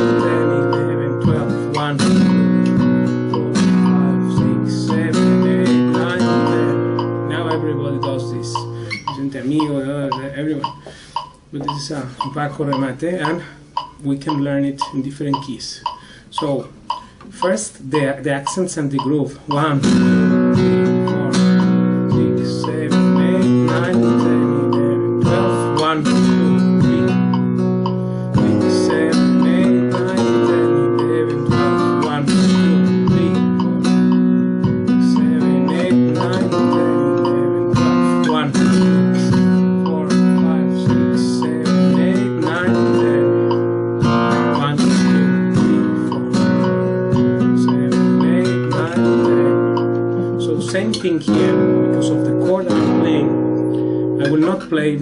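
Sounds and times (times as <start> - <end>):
flamenco guitar strumming: 0.0 - 55.0.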